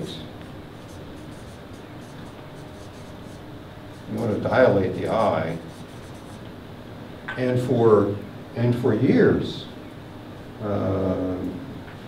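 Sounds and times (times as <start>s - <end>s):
marker pen scratching on paper: 0.8s - 6.4s.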